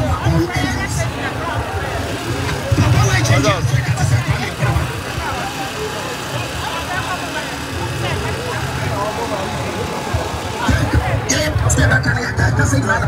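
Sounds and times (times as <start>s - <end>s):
crowd babble: 0.0s - 13.0s.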